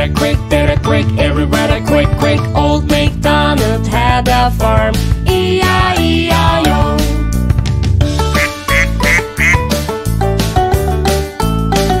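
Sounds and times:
upbeat children's instrumental music: 0.0 - 12.0
cartoon duck quacking: 8.3 - 9.6.

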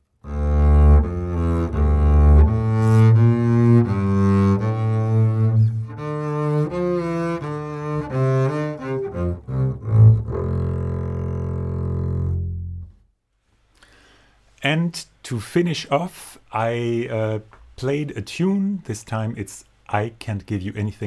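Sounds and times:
bowed double bass: 0.2 - 13.1.

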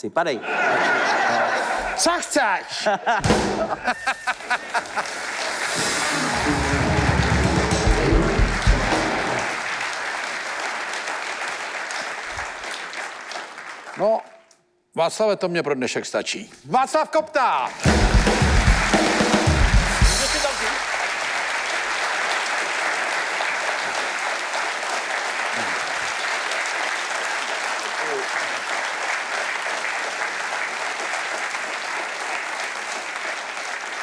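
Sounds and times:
band playing drums and bass: 3.2 - 3.9, 5.7 - 9.5, 17.7 - 20.8
audience applauding: 3.4 - 14.3, 17.7 - 34.0.

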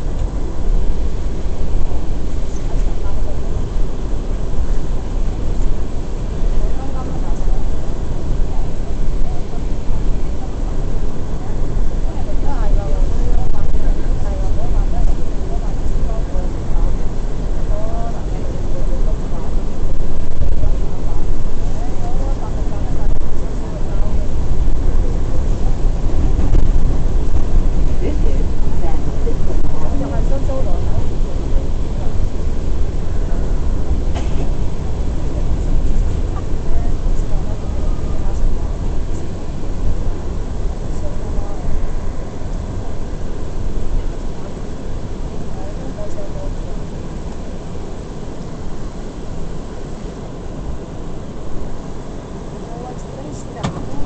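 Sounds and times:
train wheels rumbling on rails: 0.0 - 51.2.

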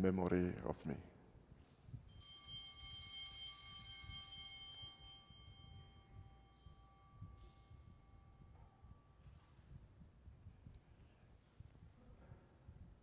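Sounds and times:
altar bell ringing: 2.1 - 9.5.

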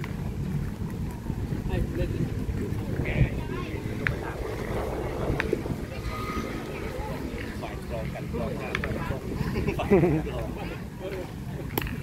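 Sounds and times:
wind buffeting microphone: 0.0 - 12.0
faint voices: 1.0 - 12.0.

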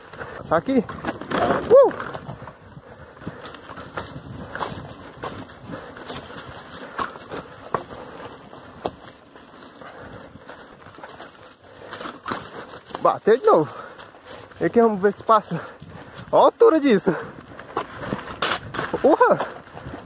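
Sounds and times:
bicycle tyres on dirt and stones: 0.0 - 20.0
bike rattling over bumps: 0.0 - 20.0.

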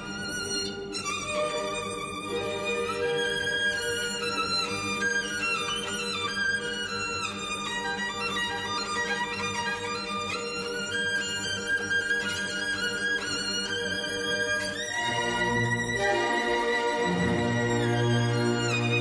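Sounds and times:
solo violin melody: 0.0 - 19.0
string orchestra sustained notes: 0.0 - 19.0.

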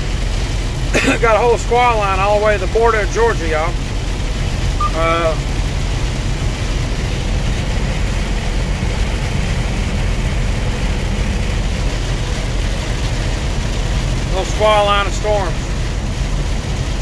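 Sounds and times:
rain and tyre spray hiss: 0.0 - 17.0
truck engine and road drone: 0.0 - 17.0.

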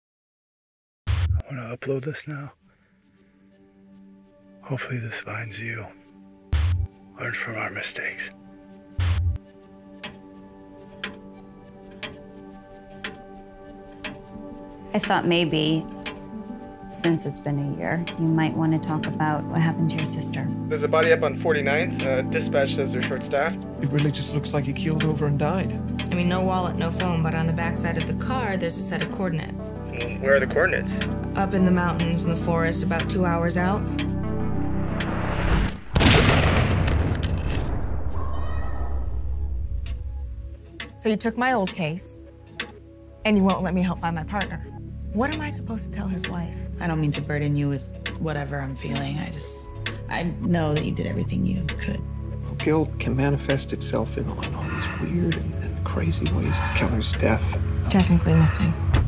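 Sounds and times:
clock ticking: 9.9 - 35.2, 39.3 - 58.9
cinematic impact boom: 34.1 - 40.5
music drone: 49.7 - 59.0.

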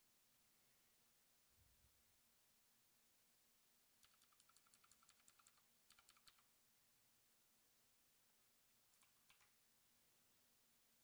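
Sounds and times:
computer keyboard typing: 4.0 - 6.5, 8.9 - 9.6.

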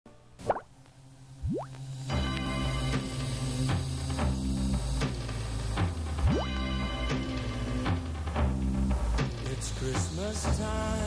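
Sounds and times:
low steady hum: 0.1 - 11.0
rising bloop pop effect: 0.4 - 0.8, 1.4 - 1.9, 6.2 - 6.6.

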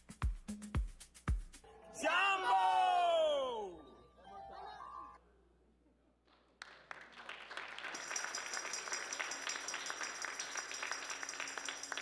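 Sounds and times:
crowd applauding: 6.6 - 12.0.

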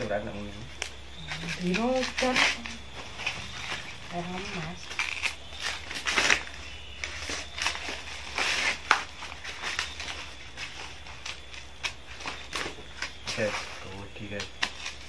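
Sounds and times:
corn husks tearing and rustling: 0.8 - 15.0.

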